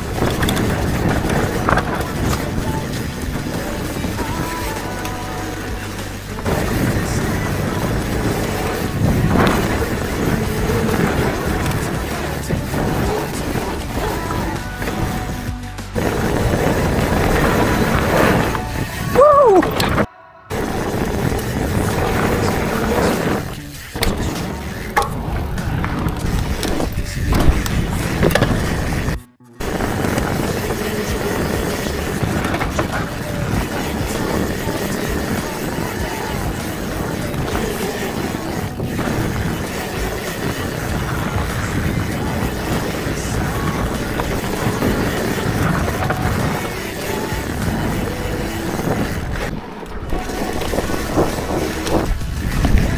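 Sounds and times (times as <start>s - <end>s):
bike rattling over bumps: 0.0s - 52.9s
bike tyres rolling on dirt: 0.0s - 52.9s
wind buffeting microphone: 0.0s - 52.9s.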